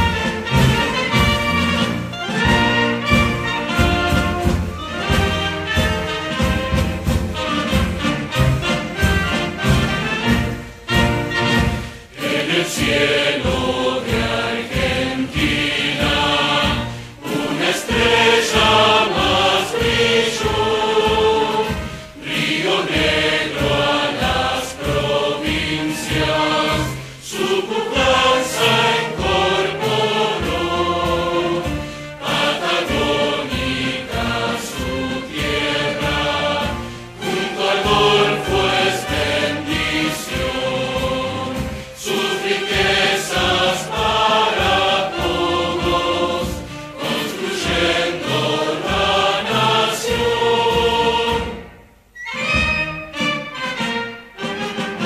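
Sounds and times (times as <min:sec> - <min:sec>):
many voices singing an anthem: 0:11.5 - 0:51.8.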